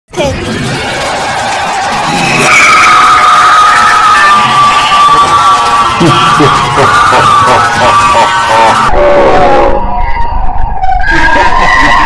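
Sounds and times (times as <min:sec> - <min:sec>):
jumble of cartoon soundtracks: 0:00.1 - 0:12.0
long high squeal: 0:02.0 - 0:12.0.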